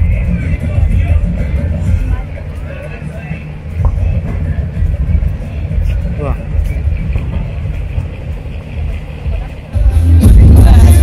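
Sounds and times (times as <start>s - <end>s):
low street rumble: 0.0s - 11.0s
music: 0.0s - 11.0s
voices: 0.0s - 11.0s.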